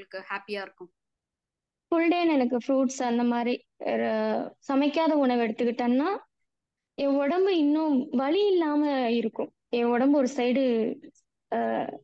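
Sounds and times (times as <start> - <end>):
person talking: 0.0 - 0.9.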